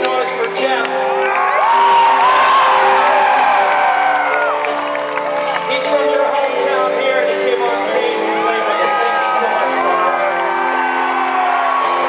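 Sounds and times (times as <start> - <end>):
live rock band music: 0.0 - 12.0
crowd cheering and screaming: 0.9 - 6.3, 7.8 - 12.0.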